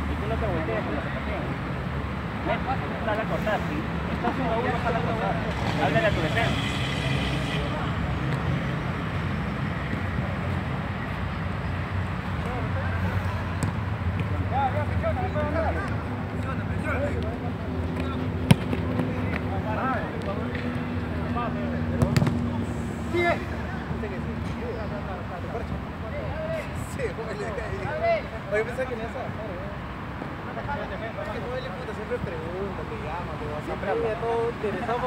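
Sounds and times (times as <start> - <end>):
distant voices of players: 0.1 - 35.0.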